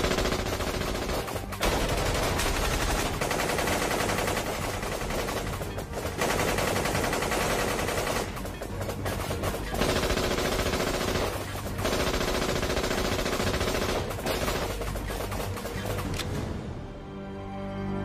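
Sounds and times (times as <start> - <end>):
rapid automatic gunfire: 0.0 - 16.1.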